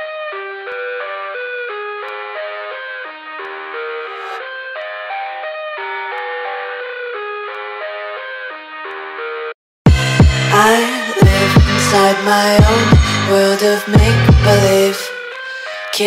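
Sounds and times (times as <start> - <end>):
sped-up electronic dance music: 9.9 - 15.4.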